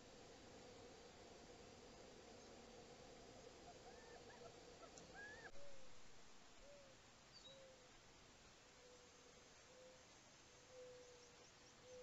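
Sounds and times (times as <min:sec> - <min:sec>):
rising and falling bird call: 0:03.7 - 0:05.8
soft low hoots: 0:08.8 - 0:12.0.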